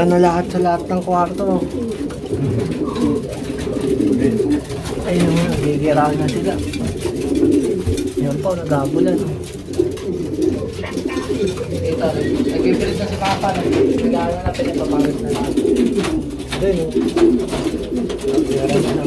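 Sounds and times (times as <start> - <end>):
pigeons cooing: 0.0 - 19.0.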